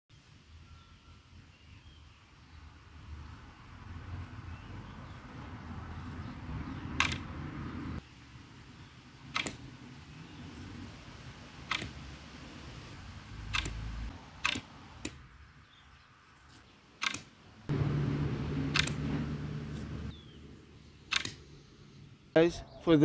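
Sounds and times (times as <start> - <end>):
sharp clicks: 6.9 - 7.4, 9.3 - 9.6, 11.6 - 12.0, 13.3 - 15.2, 17.0 - 17.4, 18.7 - 19.0, 21.1 - 21.5
low steady hum: 17.7 - 22.3.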